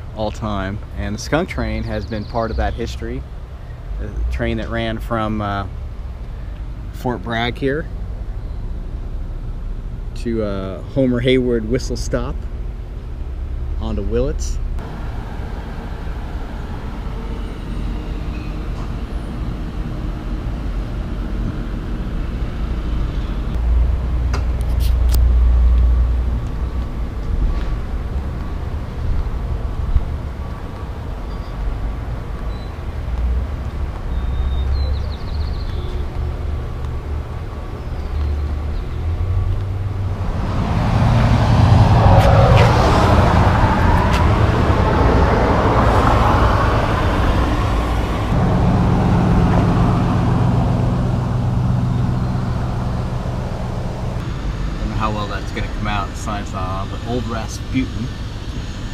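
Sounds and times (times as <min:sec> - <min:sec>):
road traffic rumble: 0:00.0 - 0:58.9.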